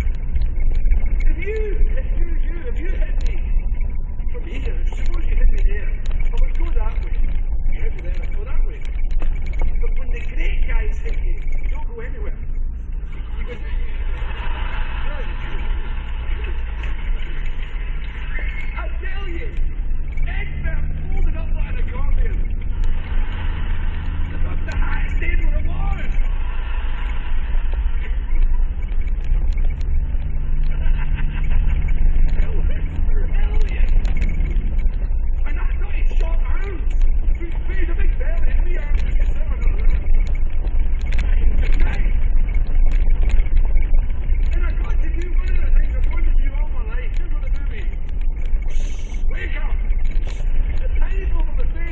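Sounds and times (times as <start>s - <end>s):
low road rumble: 0.0s - 51.9s
vehicle engine revving: 0.0s - 51.9s.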